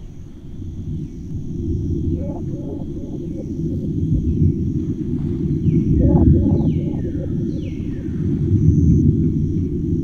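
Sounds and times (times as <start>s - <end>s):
loud deep rumble: 1.4s - 9.8s
faint high tone: 2.0s - 3.9s, 5.9s - 7.8s.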